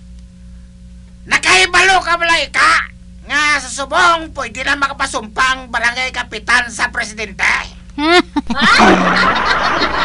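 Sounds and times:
person speaking: 0:01.2 - 0:08.4.

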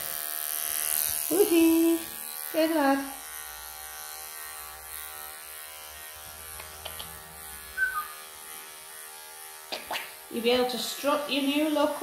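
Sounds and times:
electric clippers humming: 0:00.0 - 0:12.0.

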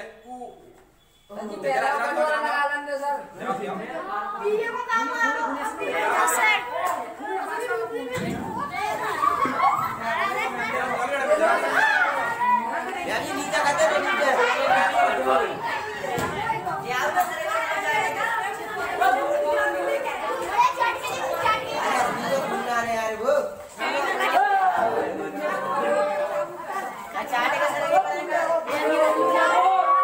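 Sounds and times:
students chattering: 0:00.0 - 0:30.0.

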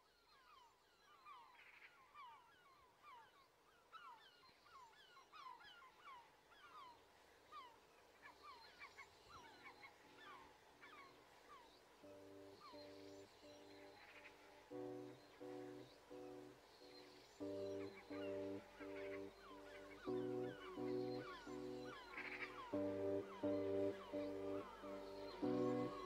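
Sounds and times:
bird chirps: 0:11.6 - 0:26.0
pulsed keyboard chords: 0:12.1 - 0:26.0.

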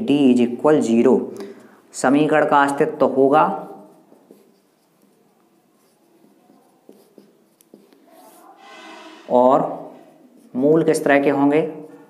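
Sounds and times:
marker pen scratching on whiteboard: 0:02.8 - 0:12.0.

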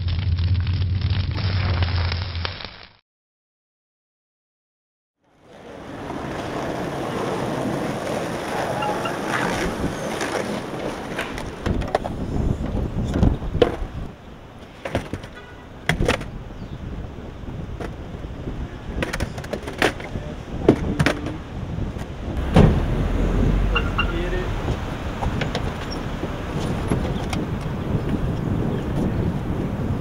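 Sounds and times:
skateboards knocking and clacking: 0:05.4 - 0:16.4, 0:17.7 - 0:18.2, 0:18.9 - 0:22.8
wind on microphone: 0:05.8 - 0:14.2, 0:15.9 - 0:30.0.

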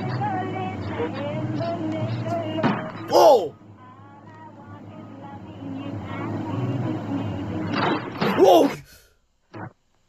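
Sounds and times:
low background music: 0:00.0 - 0:08.1
faint voice-like sounds: 0:03.1 - 0:03.5.

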